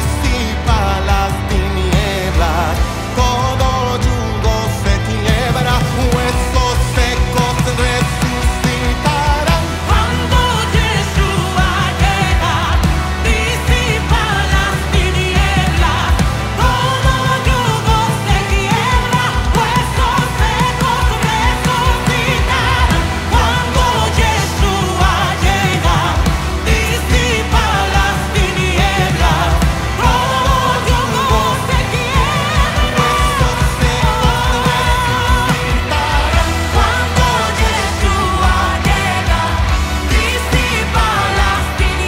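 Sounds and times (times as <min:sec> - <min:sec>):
worship band playing: 0:00.0 - 0:42.0
women singing: 0:05.3 - 0:42.0.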